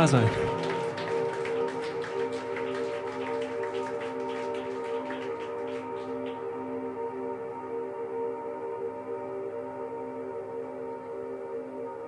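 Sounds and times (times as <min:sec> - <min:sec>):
ambient electronic drone: 0:00.0 - 0:12.0.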